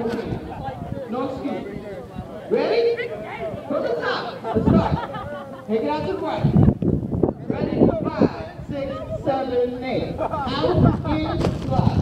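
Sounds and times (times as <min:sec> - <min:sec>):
several people talking: 0:00.0 - 0:12.0.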